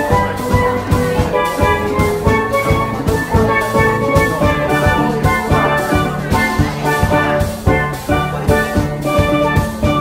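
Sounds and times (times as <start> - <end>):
drum beat: 0.0 - 10.0
melody notes: 0.0 - 10.0.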